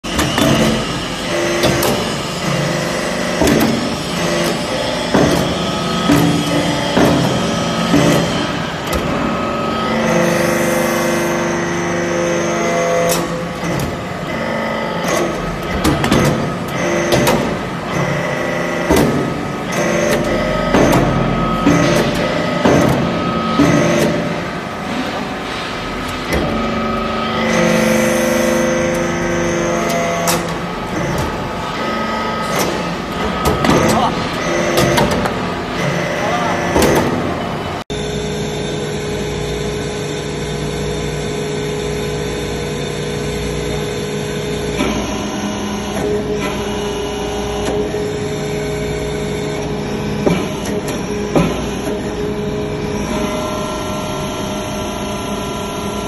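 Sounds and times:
sharp metal knocks and clanks: 0.0s - 9.3s, 15.0s - 36.0s
hydraulic unit hum and whine: 0.0s - 56.0s.

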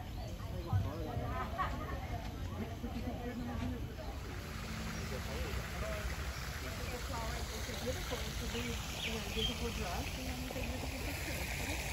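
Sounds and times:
faint voices chatting: 0.0s - 11.9s.

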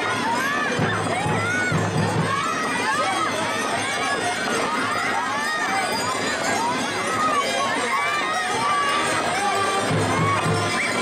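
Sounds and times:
children shouting: 0.0s - 11.0s.

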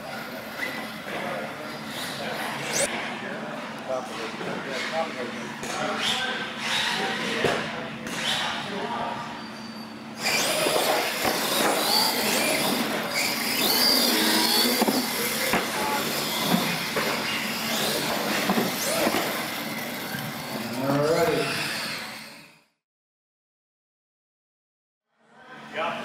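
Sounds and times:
rc truck motors whining: 9.7s - 22.8s.

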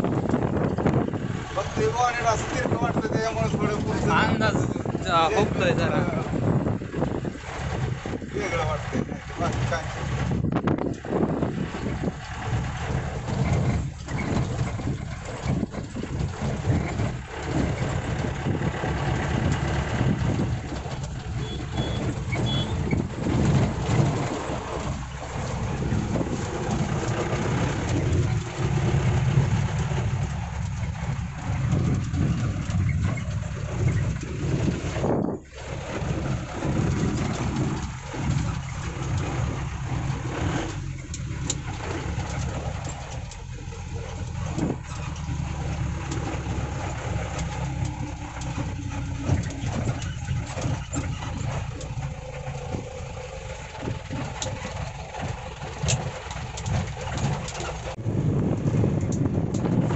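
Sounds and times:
diesel engine running: 0.0s - 59.9s
road and wind noise: 0.0s - 59.9s.

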